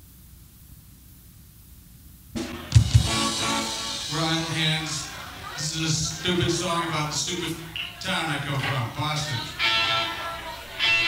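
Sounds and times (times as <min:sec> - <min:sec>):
tape hiss: 0:00.0 - 0:11.0
drum kit with bass drum hits: 0:02.4 - 0:05.2
electric guitar ringing: 0:02.4 - 0:11.0.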